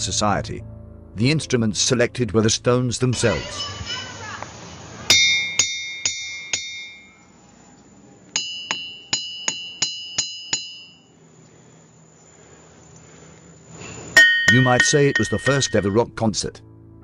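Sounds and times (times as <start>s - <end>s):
hammer tapping ringing rock: 5.1s - 7.3s, 8.3s - 11.2s, 14.1s - 16.2s.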